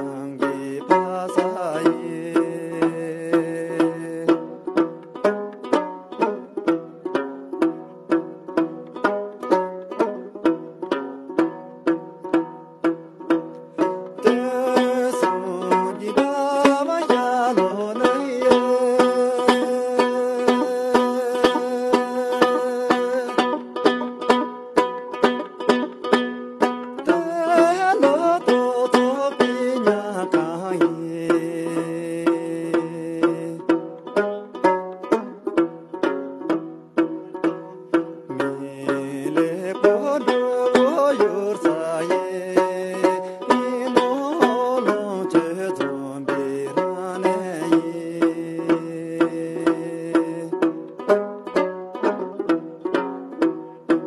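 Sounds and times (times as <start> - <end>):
man singing: 0.0 - 4.9, 14.1 - 23.7, 27.0 - 33.9, 38.2 - 50.9
lute strumming: 0.0 - 54.0.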